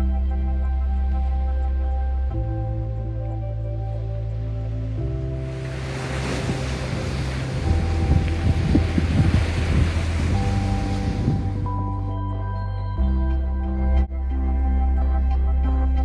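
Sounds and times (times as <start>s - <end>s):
soft background music: 0.0s - 16.0s
wind on microphone: 5.4s - 12.0s
surf breaking on pebbles: 5.5s - 11.5s.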